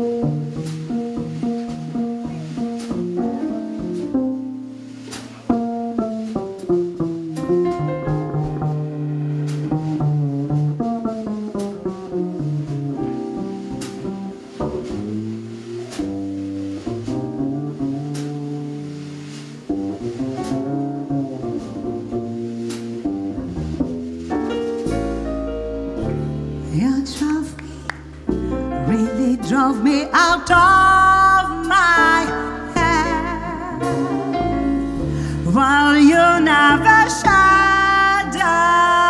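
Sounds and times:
piano chords: 0:00.0 - 0:39.0
plucked double bass: 0:00.0 - 0:39.0.

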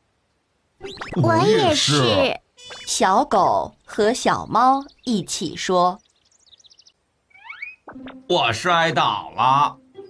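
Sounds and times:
cartoon bird chirps: 0:00.8 - 0:03.1, 0:07.3 - 0:08.3.

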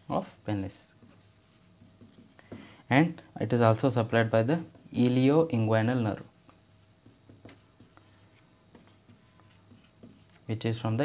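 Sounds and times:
marker writing on whiteboard: 0:00.8 - 0:02.7, 0:06.2 - 0:11.0.

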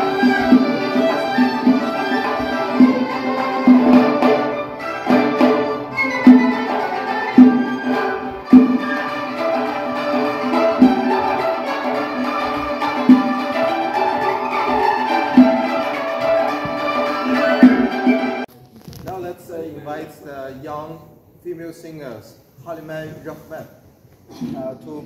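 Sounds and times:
frame drum strikes: 0:00.0 - 0:18.0
hammered dulcimer: 0:00.0 - 0:18.5.

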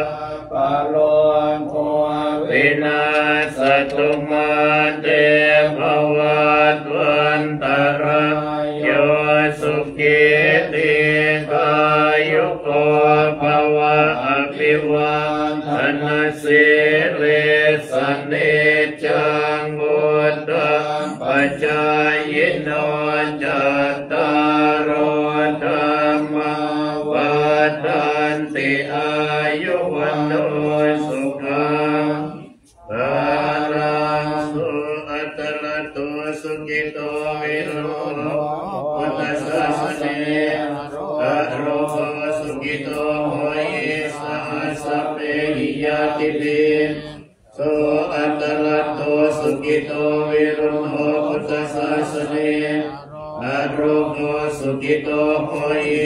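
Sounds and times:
monks chanting in unison: 0:00.0 - 0:56.0.

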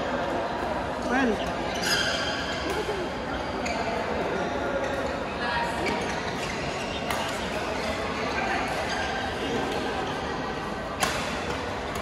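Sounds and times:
crowd chatter: 0:00.0 - 0:12.0
shoe squeak: 0:01.7 - 0:02.7, 0:03.3 - 0:04.0, 0:05.7 - 0:08.2, 0:08.8 - 0:09.3
racket hitting shuttlecock: 0:07.0 - 0:07.4, 0:11.0 - 0:12.0.

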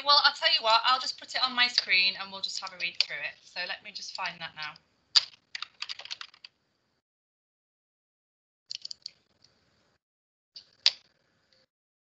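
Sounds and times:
keyboard typing: 0:05.2 - 0:06.6.

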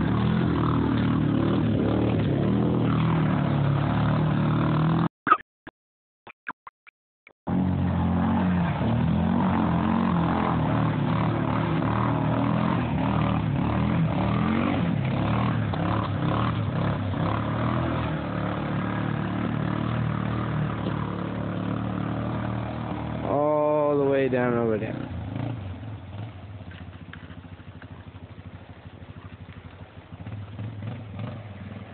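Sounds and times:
atv engine under load: 0:00.0 - 0:05.1, 0:07.5 - 0:31.9
splashing water: 0:25.2 - 0:31.9.

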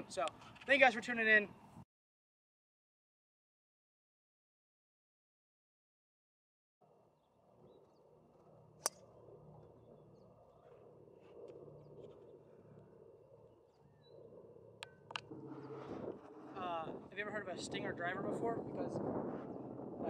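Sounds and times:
outdoor background noise: 0:00.0 - 0:01.8, 0:06.8 - 0:20.0
faint bird chirps: 0:07.1 - 0:14.5.

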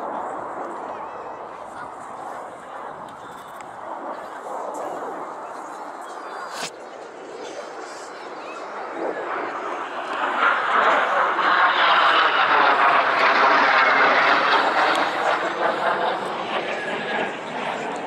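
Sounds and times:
jet flying past: 0:00.0 - 0:18.0.

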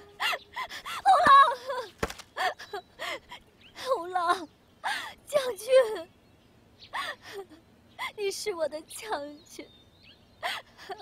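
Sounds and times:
woman sobbing: 0:00.0 - 0:06.1, 0:06.9 - 0:08.2, 0:10.4 - 0:11.0.

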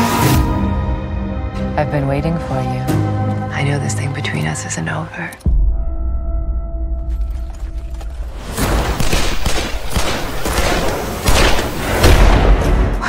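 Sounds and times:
rapid gunshots: 0:08.8 - 0:12.7.

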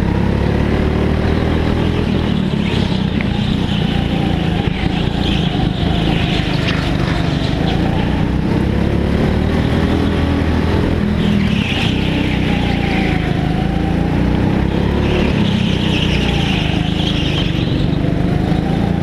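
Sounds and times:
go-kart engine revving: 0:00.0 - 0:19.0.

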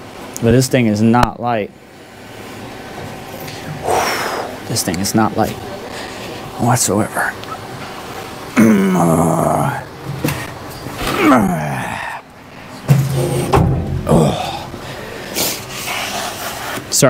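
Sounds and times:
man grunting with effort: 0:03.8 - 0:04.6, 0:08.5 - 0:09.9, 0:11.0 - 0:12.3, 0:14.0 - 0:15.3
knocks: 0:12.9 - 0:14.2.

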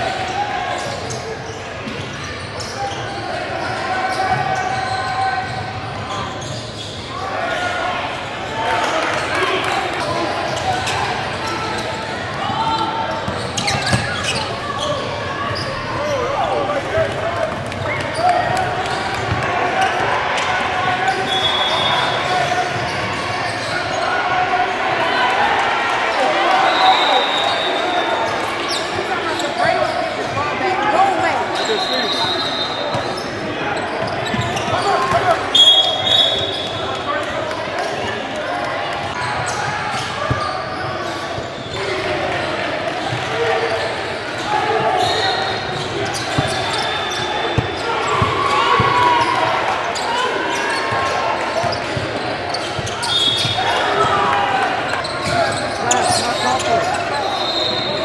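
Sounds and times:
sneaker squeaks: 0:00.7 - 0:07.7, 0:10.3 - 0:16.8, 0:21.0 - 0:24.2, 0:26.3 - 0:37.9, 0:39.1 - 0:41.8, 0:43.1 - 0:58.0
indistinct voices: 0:41.8 - 0:58.0.

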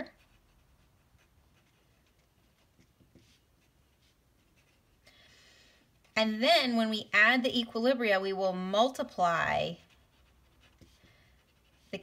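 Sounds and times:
pen scratching on paper: 0:00.0 - 0:05.0, 0:09.2 - 0:12.0.

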